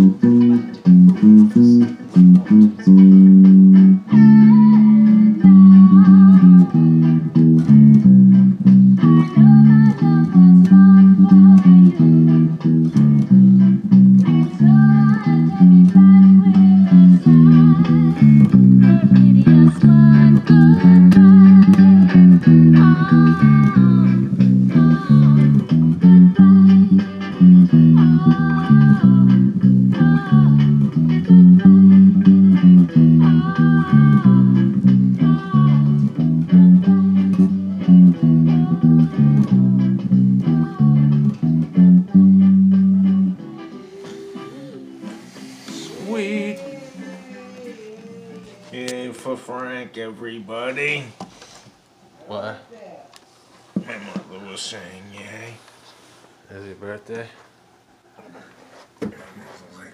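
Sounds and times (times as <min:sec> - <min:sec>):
electric bass guitar riff: 0:00.0 - 0:49.0.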